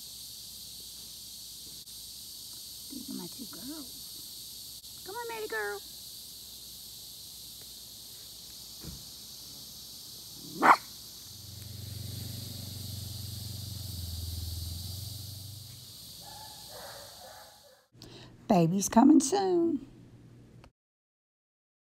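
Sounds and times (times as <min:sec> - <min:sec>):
steady high hiss: 0:00.0 - 0:18.0
dog barking: 0:10.4 - 0:10.9, 0:16.2 - 0:17.9
low rumble: 0:11.4 - 0:15.9.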